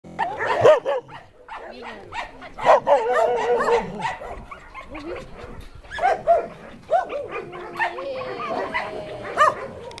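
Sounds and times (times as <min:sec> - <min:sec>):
dogs yipping: 0:00.2 - 0:10.0.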